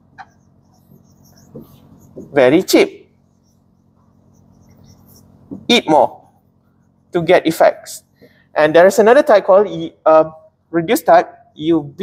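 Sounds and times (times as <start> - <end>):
marker writing on whiteboard: 0.0 - 7.3
low room hum: 0.0 - 12.0.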